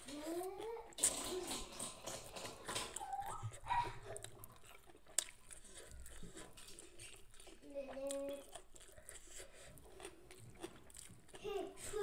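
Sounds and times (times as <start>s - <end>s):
chewing leafy greens: 0.0s - 12.0s.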